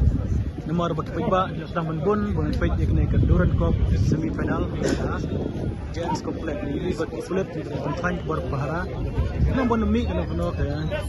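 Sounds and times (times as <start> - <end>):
street noise rumble: 0.0 - 11.0
people talking: 0.2 - 11.0.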